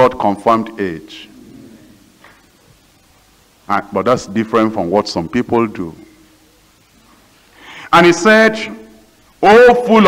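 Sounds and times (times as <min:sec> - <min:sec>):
man preaching: 0:00.0 - 0:01.3, 0:03.7 - 0:06.0, 0:07.8 - 0:10.0
faint background hiss: 0:00.0 - 0:10.0.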